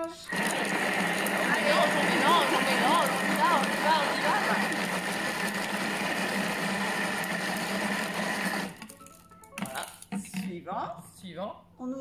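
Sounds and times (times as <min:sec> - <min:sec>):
food processor motor whining: 0:00.0 - 0:10.0.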